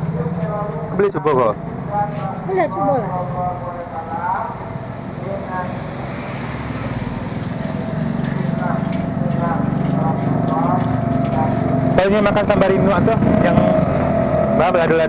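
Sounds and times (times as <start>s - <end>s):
motor engine running: 0.0s - 15.0s.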